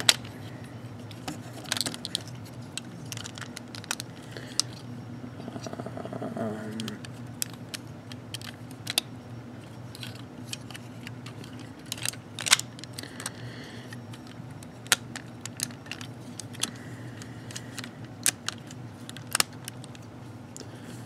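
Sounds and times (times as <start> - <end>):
low steady hum: 0.0 - 21.0
plastic toy parts clicking: 14.2 - 16.8, 17.5 - 20.0.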